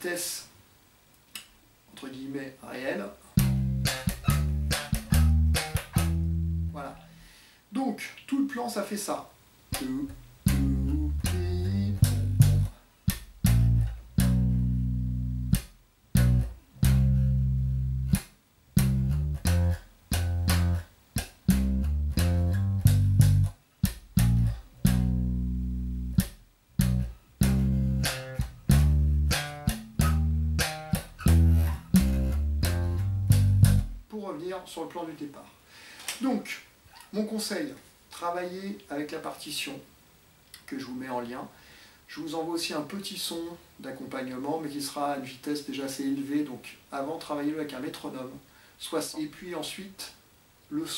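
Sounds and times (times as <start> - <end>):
slap bass riff: 3.4 - 7.2, 9.7 - 34.1.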